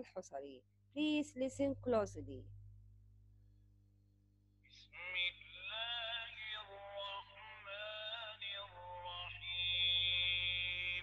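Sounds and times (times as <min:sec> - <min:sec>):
man chanting recitation: 0:04.8 - 0:11.0.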